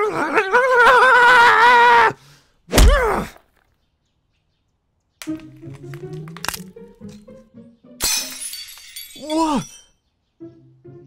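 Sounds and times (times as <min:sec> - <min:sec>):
rock cracking and shattering: 0:05.2 - 0:06.7.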